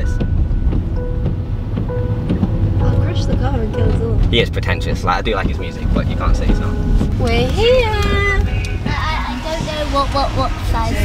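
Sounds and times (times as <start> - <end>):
car driving on wet road: 0.0 - 11.0
quiet music: 0.0 - 11.0.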